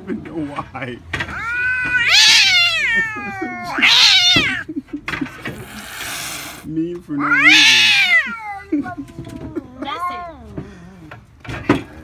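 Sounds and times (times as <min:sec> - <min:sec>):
cat yowling: 0:01.3 - 0:04.6, 0:07.2 - 0:10.2.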